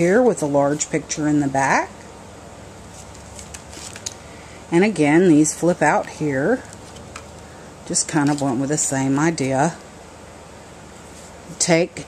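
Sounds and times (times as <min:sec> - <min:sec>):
low room hum: 0:00.0 - 0:12.0
paper pages rustling and tapping: 0:02.9 - 0:04.2.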